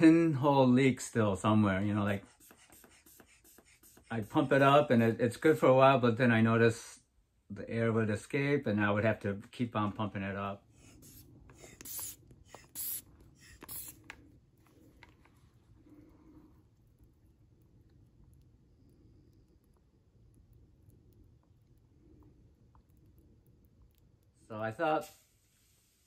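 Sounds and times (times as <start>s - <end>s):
low hum: 12.2s - 24.5s.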